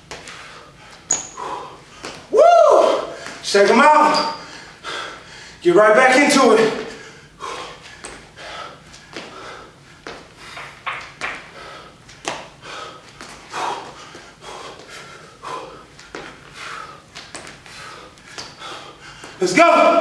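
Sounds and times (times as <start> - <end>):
man breathing hard: 0.2 - 2.2, 4.4 - 5.6, 6.9 - 10.8, 11.4 - 19.4.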